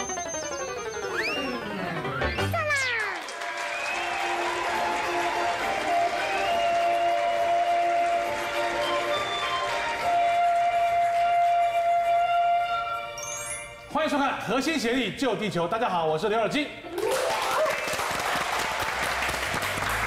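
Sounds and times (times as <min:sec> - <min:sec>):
television theme music: 0:00.0 - 0:13.9, 0:16.8 - 0:20.0
applause: 0:02.6 - 0:11.3, 0:17.0 - 0:20.0.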